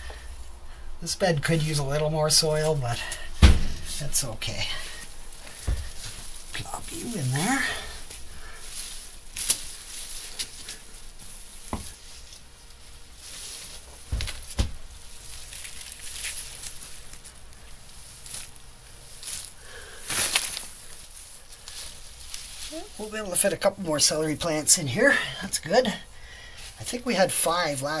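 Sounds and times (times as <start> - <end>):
hands rustling soil: 0.0 - 28.0
soft thumps pressing soil: 1.8 - 12.5.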